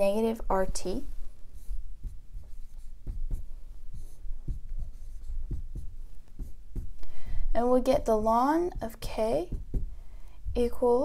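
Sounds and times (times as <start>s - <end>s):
marker writing on a whiteboard: 0.0s - 11.0s.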